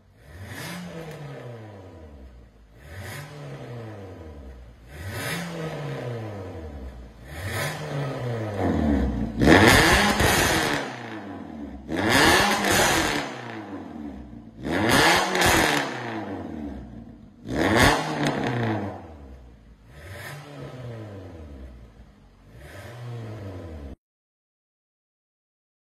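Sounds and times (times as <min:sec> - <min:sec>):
car engine revving: 0:00.0 - 0:24.0.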